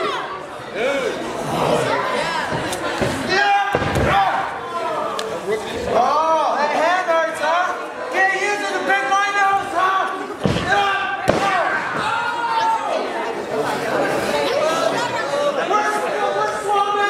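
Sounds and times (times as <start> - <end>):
crowd shouting and chatter: 0.0 - 17.0.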